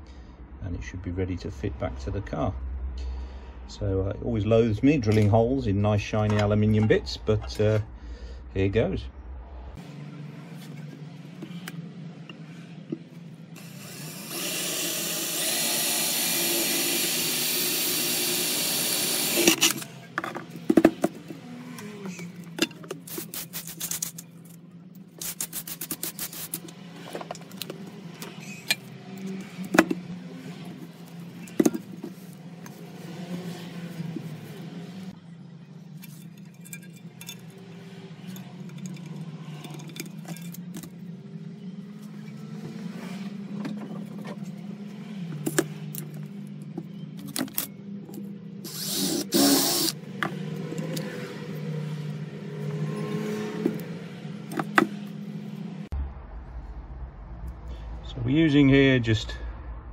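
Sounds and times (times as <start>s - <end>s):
metal scraping: 19.2s - 35.2s
metal parts clinking and knocking: 35.9s - 37.6s, 38.2s - 41.1s.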